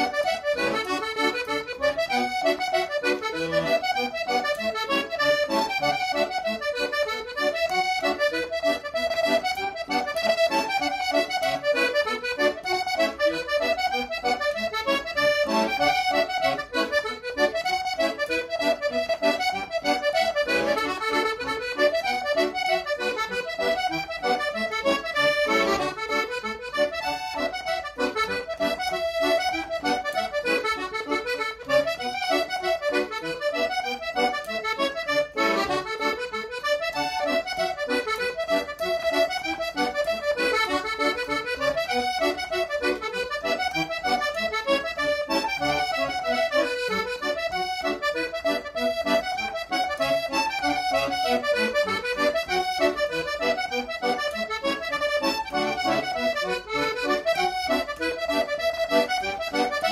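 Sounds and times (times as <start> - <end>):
piano accordion playing: 0.0 - 59.9.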